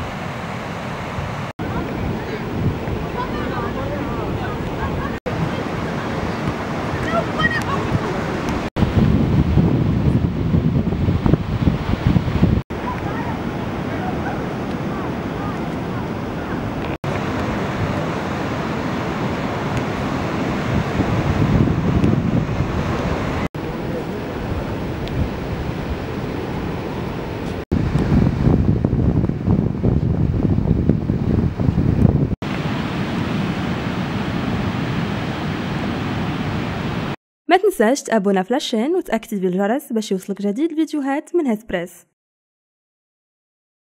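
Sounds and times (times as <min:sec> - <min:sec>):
faint surf: 0:00.0 - 0:37.2
wind buffeting microphone: 0:01.2 - 0:37.2.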